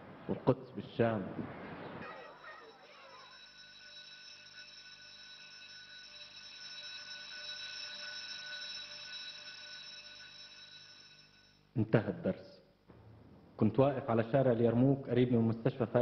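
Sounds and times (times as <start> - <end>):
high ringing drone: 2.0 - 11.8.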